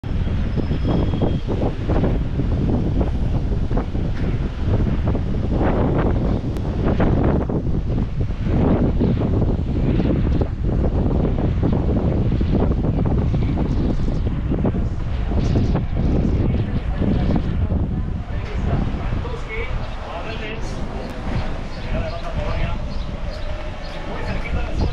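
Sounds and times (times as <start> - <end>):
wind buffeting microphone: 0.0 - 24.9.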